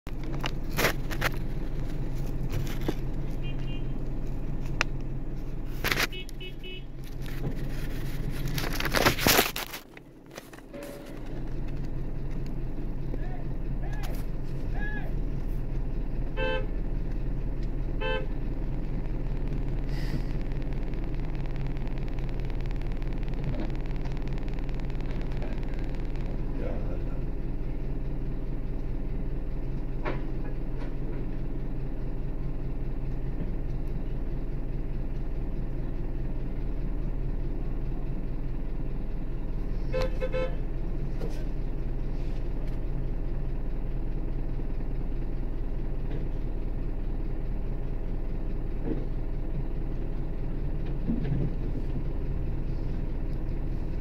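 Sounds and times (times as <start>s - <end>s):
car engines idling: 0.1s - 54.0s
car horn toots: 3.3s - 4.0s, 6.0s - 7.0s, 10.7s - 11.3s, 16.3s - 16.8s, 17.9s - 18.4s, 39.8s - 40.7s.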